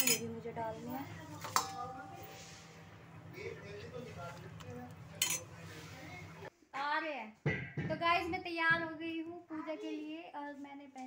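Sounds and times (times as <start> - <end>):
steel pots and utensils clinking: 0.0 - 0.5, 1.3 - 2.3, 5.1 - 5.6.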